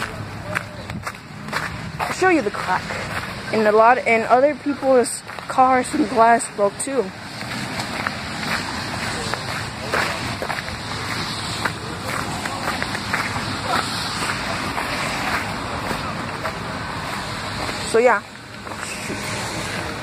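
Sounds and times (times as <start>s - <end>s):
steady rushing noise: 0.0s - 20.0s
footsteps crunching on wet hail: 7.2s - 20.0s.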